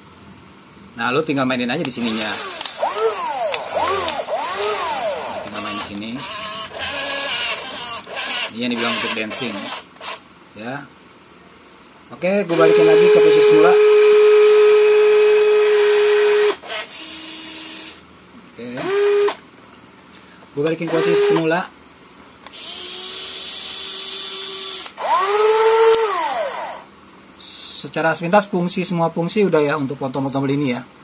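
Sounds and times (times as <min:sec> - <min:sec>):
toy excavator motors whining: 0:02.0 - 0:10.2, 0:22.5 - 0:26.8.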